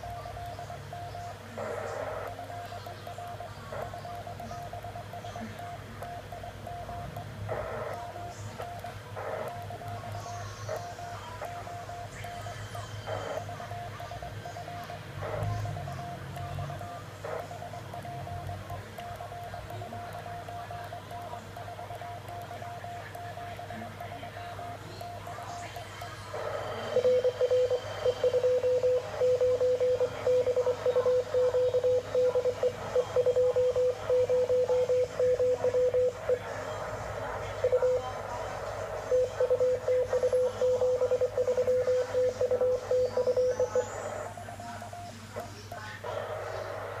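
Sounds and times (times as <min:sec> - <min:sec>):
faint steady tone: 0:00.0 - 0:47.0
morse code tone keying: 0:00.0 - 0:47.0.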